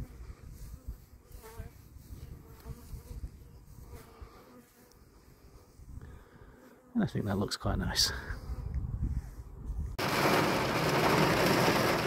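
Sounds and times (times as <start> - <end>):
bees buzzing: 10.0 - 12.0.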